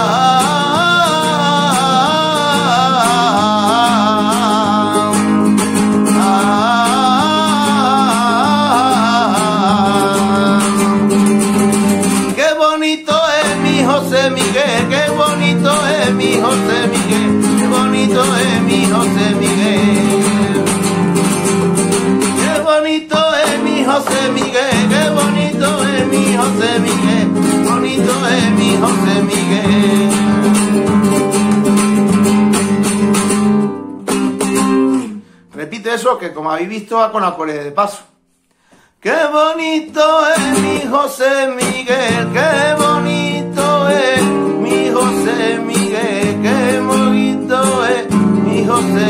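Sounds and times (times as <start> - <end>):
man singing: 0.0 - 31.4, 39.0 - 49.0
strummed nylon-string guitar: 0.0 - 35.6, 39.8 - 49.0.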